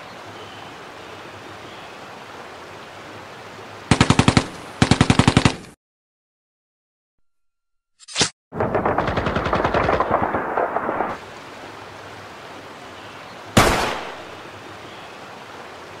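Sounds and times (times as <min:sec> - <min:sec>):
gunshots: 0:08.6 - 0:11.2, 0:13.6 - 0:14.3.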